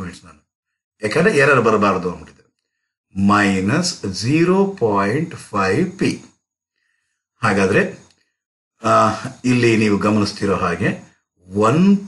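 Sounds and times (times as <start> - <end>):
man talking: 0.0 - 0.4, 1.0 - 2.4, 3.1 - 6.3, 7.4 - 8.1, 8.8 - 12.0.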